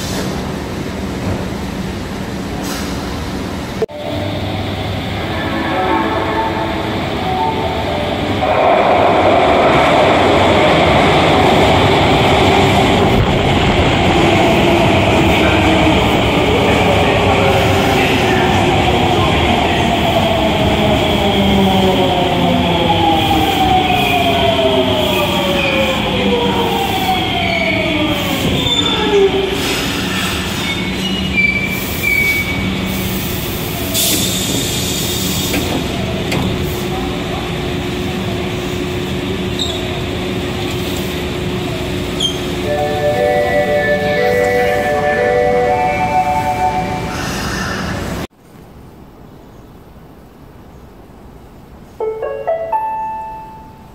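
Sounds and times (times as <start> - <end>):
train wheel noise: 0.0 - 48.3
subway train motor whine: 0.1 - 48.3.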